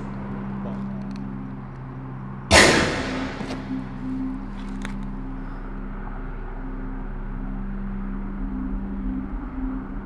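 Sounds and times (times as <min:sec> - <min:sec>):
steady low hum: 0:00.0 - 0:10.0
sudden loud bang: 0:02.5 - 0:04.0.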